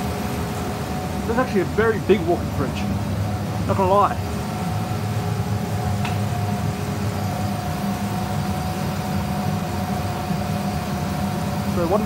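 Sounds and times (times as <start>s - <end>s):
evaporator fans humming: 0.0s - 12.0s
faint steady whine: 0.0s - 12.0s.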